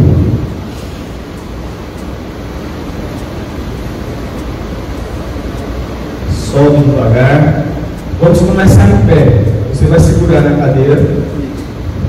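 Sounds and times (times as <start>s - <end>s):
low rumble room tone: 0.0s - 12.0s.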